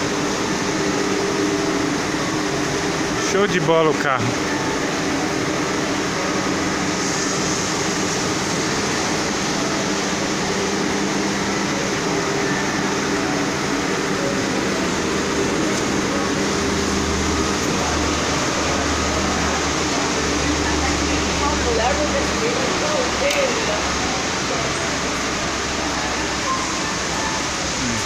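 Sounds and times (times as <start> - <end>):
diesel engine idling: 0.0 - 28.0.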